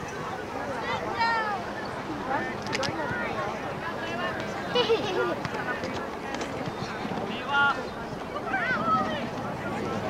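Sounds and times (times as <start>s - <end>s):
distant voices of players: 0.0s - 10.0s.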